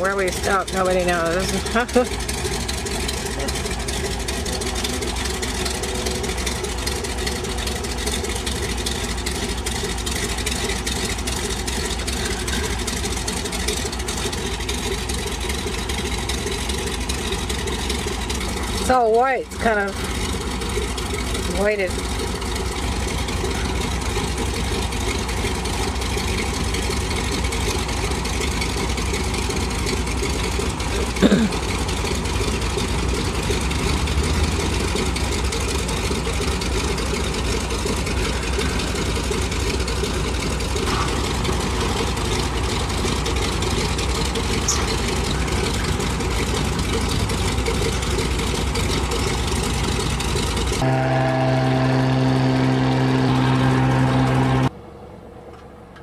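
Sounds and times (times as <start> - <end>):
floatplane engine drone: 0.0 - 56.0
steady pitched hum: 50.8 - 54.7.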